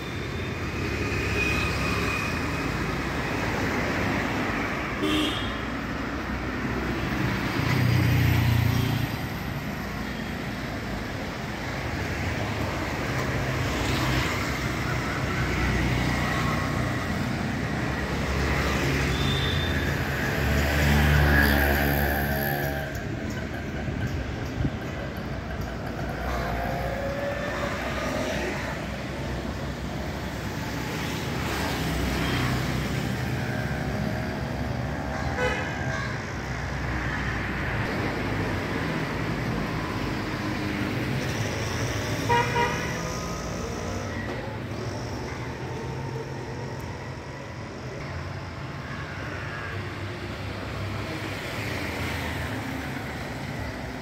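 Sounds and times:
cars passing: 0.0s - 54.0s
vehicle horn: 5.0s - 5.6s, 42.3s - 42.9s
motorbikes passing: 11.4s - 48.0s.

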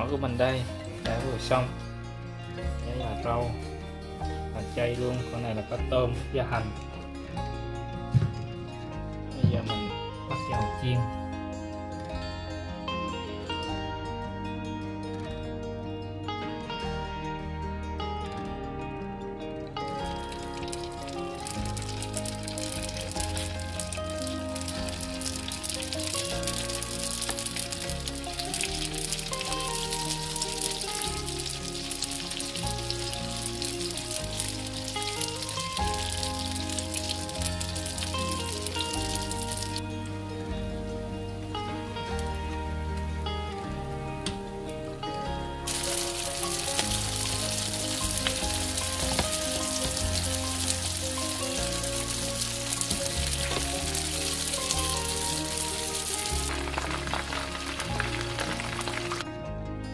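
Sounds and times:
background music: 0.0s - 59.9s
spring rolls sizzling in oil: 20.0s - 43.2s, 45.6s - 59.2s.

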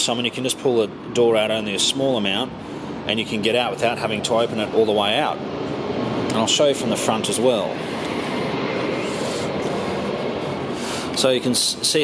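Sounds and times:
car running with air conditioning: 0.0s - 12.0s.

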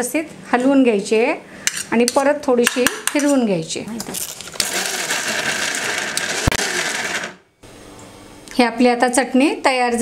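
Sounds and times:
mixer grinder grinding: 4.0s - 7.5s.

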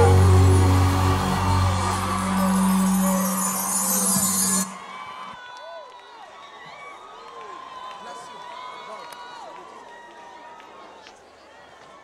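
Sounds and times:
crowd talking and calling: 0.0s - 5.4s.

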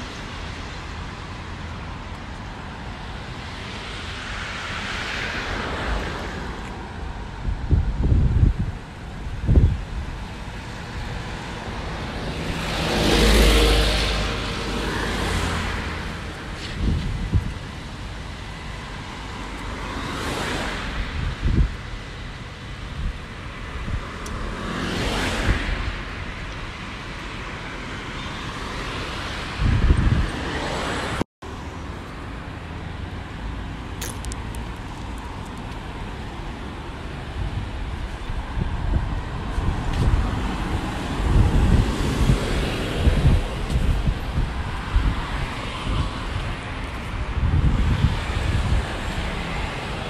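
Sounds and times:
cars passing: 0.0s - 50.0s.

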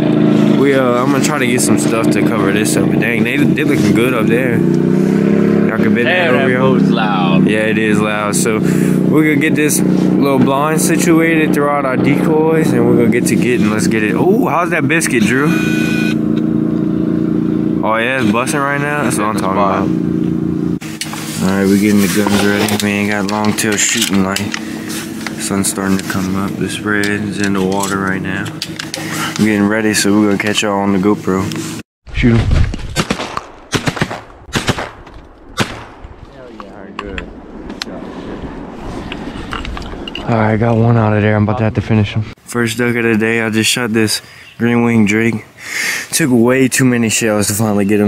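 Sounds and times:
boat motor idling: 0.0s - 31.6s
shotgun shots: 32.8s - 36.5s.

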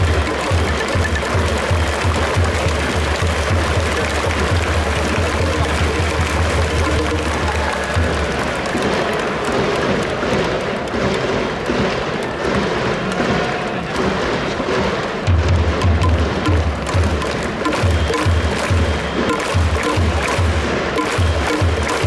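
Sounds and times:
crowd cheering with music: 0.0s - 22.0s
fast drumbeat: 0.0s - 22.0s.

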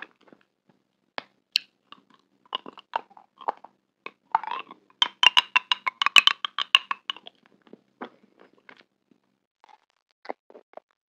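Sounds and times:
chewing gummy candy: 1.6s - 8.9s, 9.6s - 11.0s.

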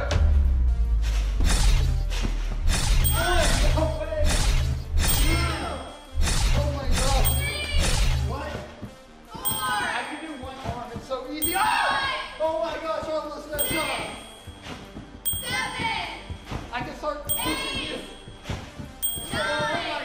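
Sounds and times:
background music with bass beat: 0.0s - 8.6s
chime sound effects: 2.9s - 8.4s, 9.4s - 10.8s, 11.4s - 12.4s, 13.6s - 16.6s, 17.3s - 20.0s.

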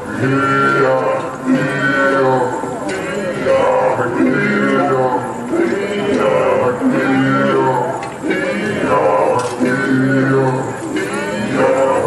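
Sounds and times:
deep throat-sung chorus: 0.0s - 12.0s
voices singing melody: 0.0s - 12.0s.

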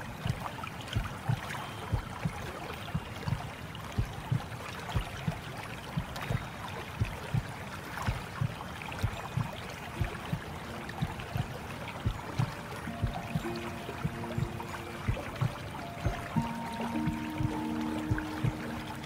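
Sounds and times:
soft held music notes: 0.0s - 19.0s
heartbeat: 0.2s - 19.0s
steady whooshing hiss: 9.4s - 19.0s.

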